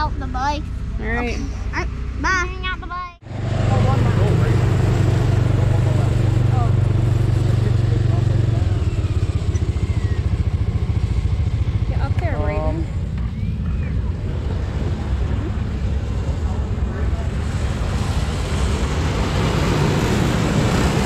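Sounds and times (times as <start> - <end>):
race car engines rumbling: 0.0 - 21.0.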